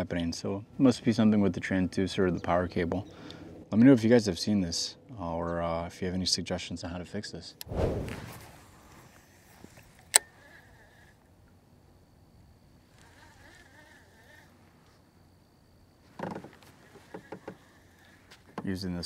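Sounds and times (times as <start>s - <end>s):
faint reel whir: 8.5s - 19.0s.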